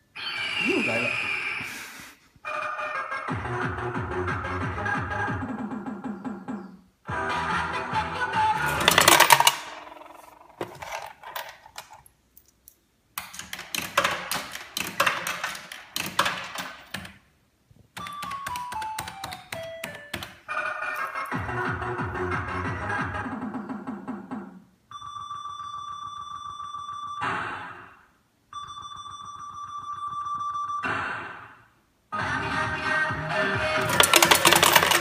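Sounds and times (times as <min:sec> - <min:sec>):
slot machine electronic jingles: 0:33.8 - 0:35.0.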